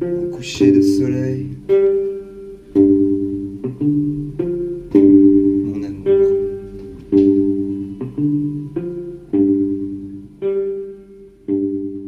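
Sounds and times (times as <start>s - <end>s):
slow plucked guitar ballad: 0.0s - 12.0s.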